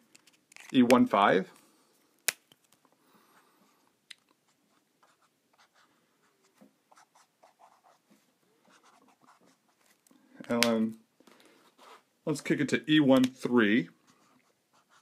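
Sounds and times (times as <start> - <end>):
marker scratching on paper: 4.7 - 9.9, 11.7 - 12.0, 14.1 - 15.0.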